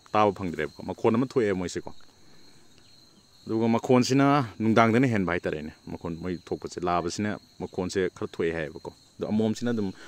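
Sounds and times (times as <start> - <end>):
high-pitched insect call: 0.0 - 10.0
man speaking: 0.2 - 2.1, 3.5 - 10.0.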